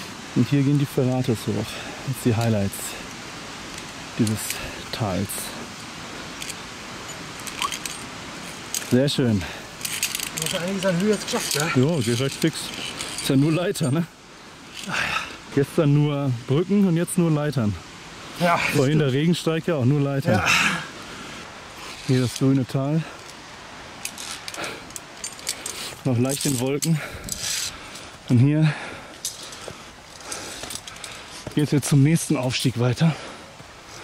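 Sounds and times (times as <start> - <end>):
steady outdoor hiss: 0.0 - 34.0
carabiners clinking on steel: 5.8 - 9.0, 9.8 - 14.0, 24.0 - 28.0, 29.2 - 31.3
brief rustle: 24.0 - 28.1.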